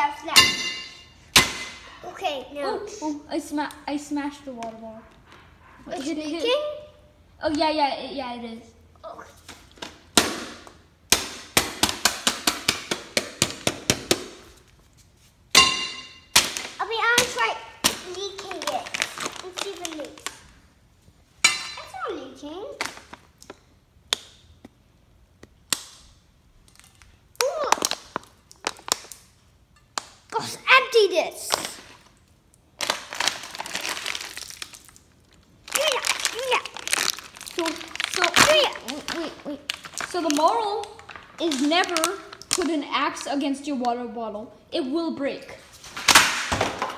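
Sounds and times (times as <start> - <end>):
children's voices: 2.0 - 5.0, 16.8 - 20.4, 35.7 - 45.6
plastic bottle crinkling: 18.1 - 20.5, 32.8 - 42.8.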